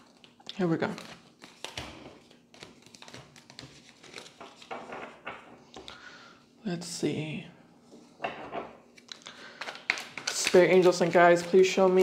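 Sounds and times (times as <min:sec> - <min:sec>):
cards being shuffled: 0:00.0 - 0:05.8, 0:08.9 - 0:12.0.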